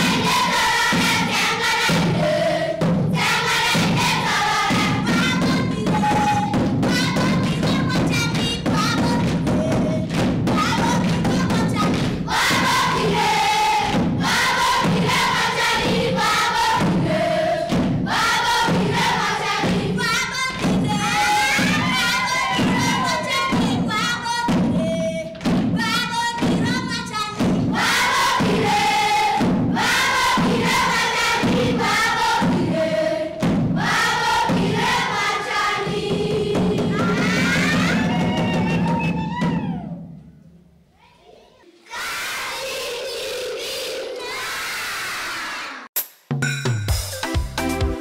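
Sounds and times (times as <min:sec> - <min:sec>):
children's choir singing: 0:00.0 - 0:38.5, 0:41.2 - 0:45.9
dancing thuds: 0:00.0 - 0:39.6
low regular beat: 0:46.0 - 0:48.0.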